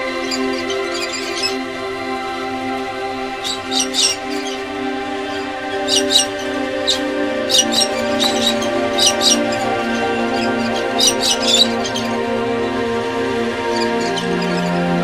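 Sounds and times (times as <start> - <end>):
high bird chirps: 0.0 - 1.8, 2.8 - 12.8, 13.5 - 15.0
soft sustained music notes: 0.0 - 15.0.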